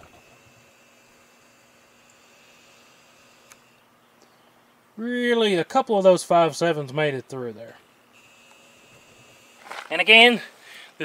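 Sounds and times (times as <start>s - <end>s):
man talking: 5.0s - 7.8s, 9.8s - 10.6s
high-pitched insect buzzing: 8.2s - 10.3s.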